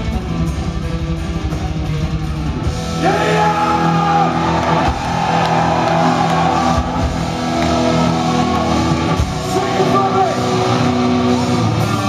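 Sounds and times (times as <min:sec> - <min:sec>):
black metal band playing live: 0:00.0 - 0:12.0.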